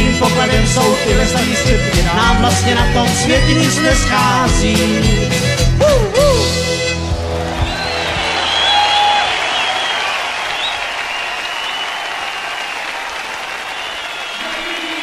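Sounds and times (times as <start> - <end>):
audience whistling: 5.7 - 15.0
audience applauding: 6.4 - 15.0.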